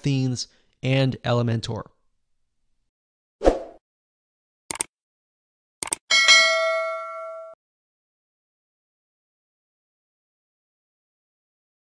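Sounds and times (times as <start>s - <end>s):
notification bell ding: 6.1s - 7.6s.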